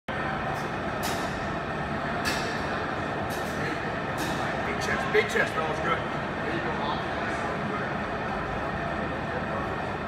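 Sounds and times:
rumbling gym background noise: 0:00.1 - 0:10.0.

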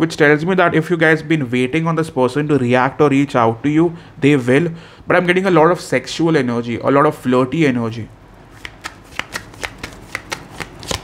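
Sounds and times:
cards being shuffled: 0:08.5 - 0:11.0.

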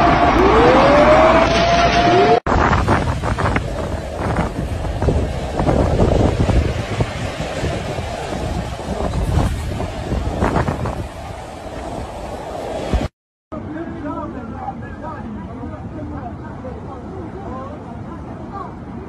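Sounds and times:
floodwater rushing: 0:00.0 - 0:13.1
wind gusting on microphone: 0:00.0 - 0:19.0.

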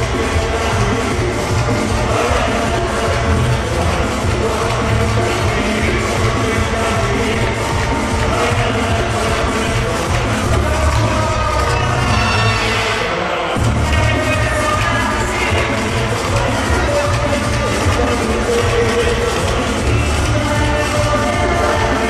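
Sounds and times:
caribbean dance music: 0:00.0 - 0:22.0.

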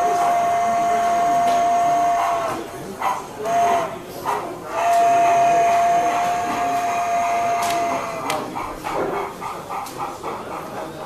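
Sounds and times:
model train whistle: 0:00.0 - 0:02.6, 0:04.7 - 0:08.1
steam locomotive chuffing: 0:00.0 - 0:11.0.

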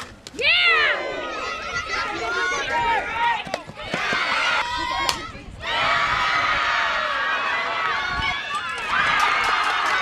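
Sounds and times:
people shouting and cheering: 0:00.3 - 0:10.0.

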